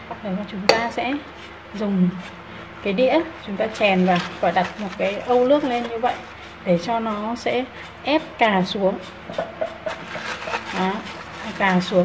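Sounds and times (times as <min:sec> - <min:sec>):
plastic bag crinkling: 0:03.6 - 0:06.3, 0:09.9 - 0:12.0.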